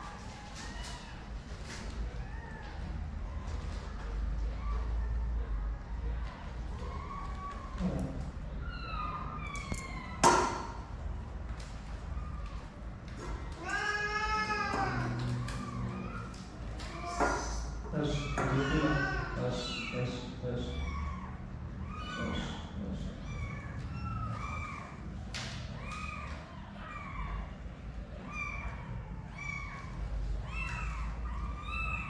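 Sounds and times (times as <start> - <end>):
cat meowing: 6.7 - 10.6, 12.0 - 25.1, 25.7 - 32.0.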